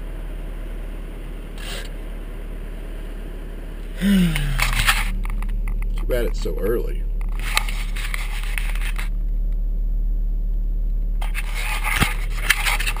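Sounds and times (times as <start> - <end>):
engine idling: 0.0 - 13.0
camera handling scraping: 11.2 - 13.0.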